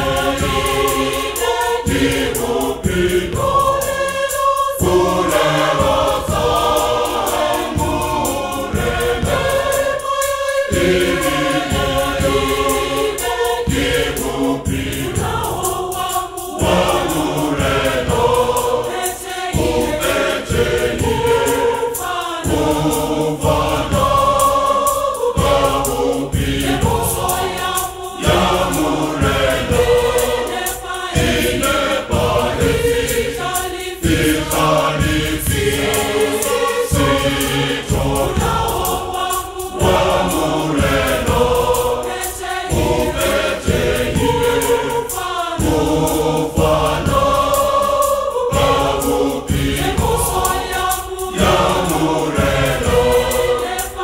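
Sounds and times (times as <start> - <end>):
choir singing gospel: 0.0 - 54.0.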